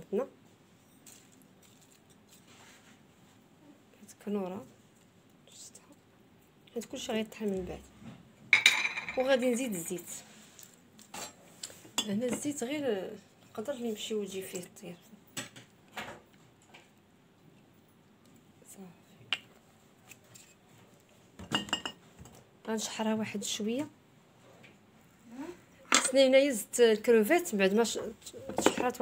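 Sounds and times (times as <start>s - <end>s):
woman's voice: 0.0s - 0.3s, 4.0s - 4.7s, 6.7s - 7.9s, 9.2s - 10.3s, 12.0s - 15.1s, 22.7s - 24.0s, 25.3s - 29.0s
kitchenware scraping: 8.5s - 9.5s, 28.0s - 29.0s
kitchenware clicking: 8.6s - 9.3s.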